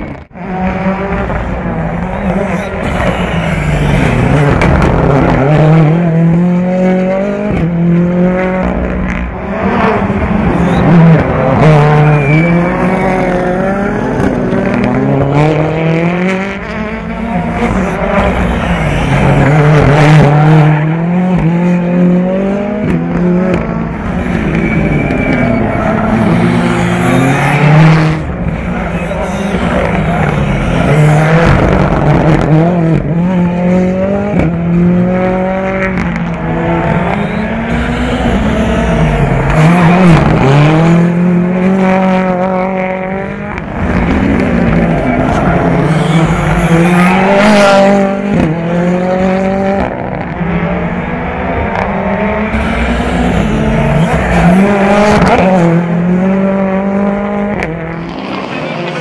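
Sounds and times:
rally car engine revving hard: 0.0 - 59.0.

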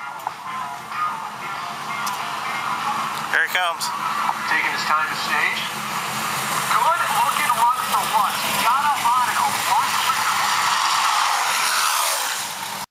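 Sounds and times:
loud background noise: 0.0 - 12.9
distorted announcer voice: 2.6 - 11.2.

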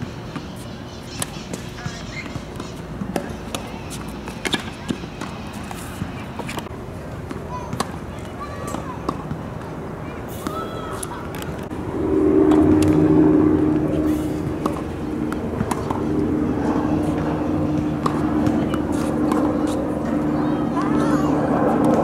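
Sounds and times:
steady low drone: 11.5 - 22.0.

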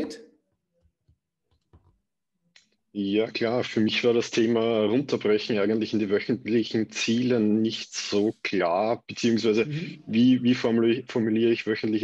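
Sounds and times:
speech: 0.0 - 0.2, 3.0 - 12.0.

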